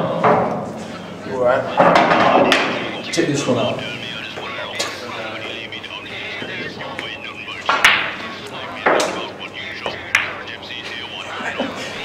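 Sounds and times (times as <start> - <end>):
low voices: 0.0 - 12.0
pool balls clacking: 1.8 - 3.0, 7.7 - 8.2, 8.8 - 10.5.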